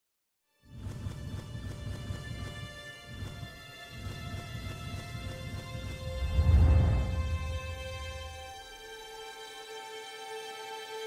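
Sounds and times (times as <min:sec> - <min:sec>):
low pulsing rumble: 0:06.0 - 0:08.6.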